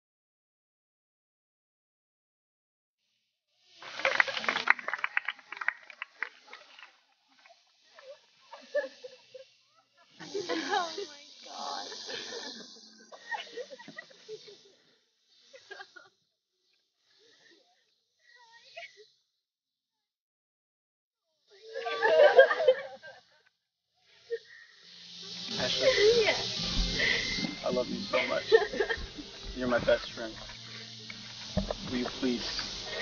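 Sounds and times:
breathy hiss: 3.2 - 19.3, 21.4 - 33.0.

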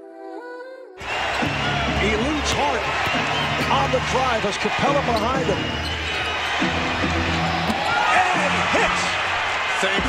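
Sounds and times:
arena crowd noise: 1.0 - 10.0
commentator talking: 1.9 - 3.0, 3.6 - 5.7, 8.1 - 10.0.

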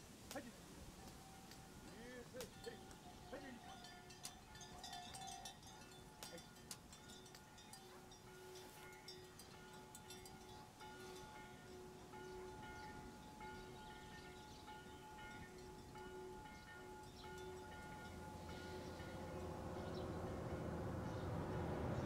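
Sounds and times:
soft chime-like tones: 0.9 - 22.0
vehicle engine rumble: 17.3 - 22.0.

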